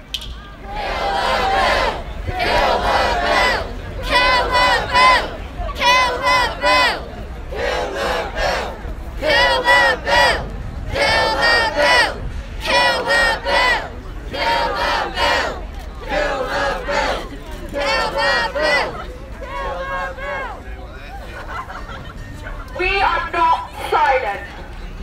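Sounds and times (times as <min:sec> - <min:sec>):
crowd chanting a slogan: 0:00.6 - 0:20.8.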